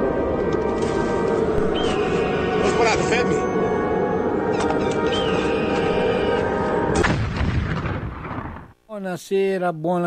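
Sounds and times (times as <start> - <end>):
music: 0.0 - 7.1
heavy boom: 6.9 - 8.7
artillery fire: 7.0 - 8.7.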